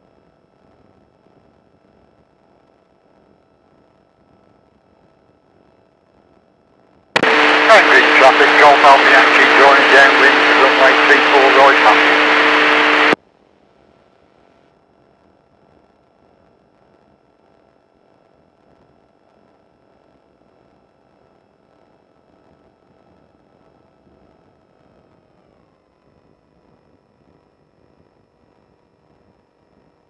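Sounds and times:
light aircraft engine whine: 7.2 - 13.2.

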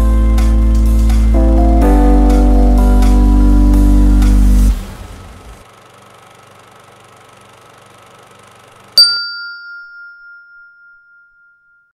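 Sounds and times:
faint low drone: 0.0 - 5.6
sharp bell-like ding: 9.0 - 11.9.

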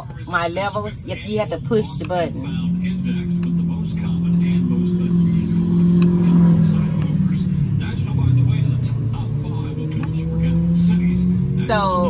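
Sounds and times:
generator humming: 0.0 - 12.0.

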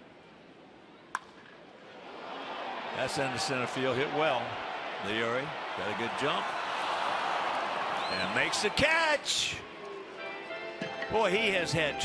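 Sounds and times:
ballpark crowd noise: 0.0 - 11.6
wooden bat cracking ball: 1.1 - 1.6.

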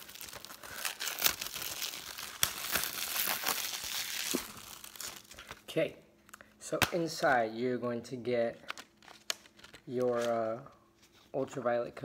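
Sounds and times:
plastic wrap crinkling and tearing: 0.0 - 5.7.

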